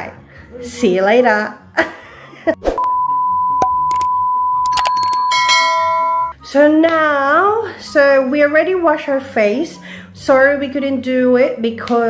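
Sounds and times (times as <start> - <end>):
steady beep tone: 2.8 - 6.4
notification bell chime: 4.6 - 6.4.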